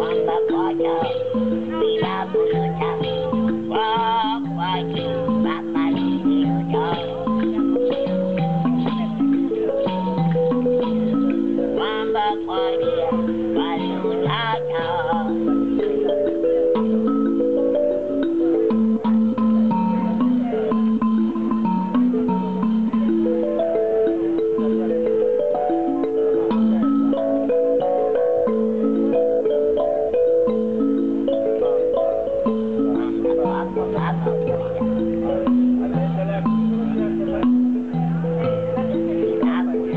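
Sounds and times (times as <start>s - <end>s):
toy instrument tune: 0.0s - 39.9s.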